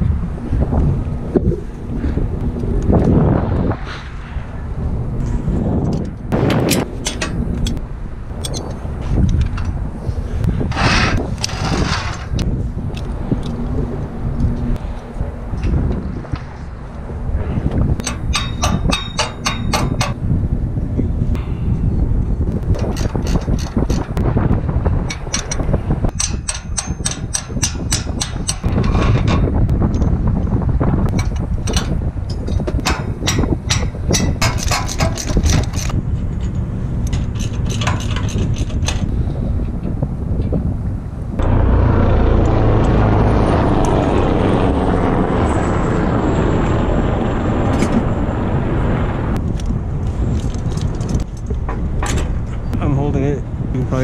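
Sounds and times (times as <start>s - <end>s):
wind buffeting microphone: 0.0s - 54.0s
metallic clicks of hand tools: 8.4s - 9.7s, 18.0s - 20.2s, 22.7s - 24.2s, 25.1s - 30.1s, 31.1s - 36.0s.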